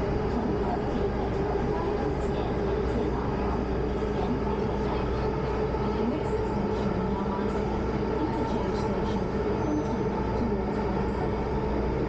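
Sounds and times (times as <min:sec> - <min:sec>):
steady hum: 0:00.0 - 0:12.0
subway train rumbling: 0:00.0 - 0:12.0.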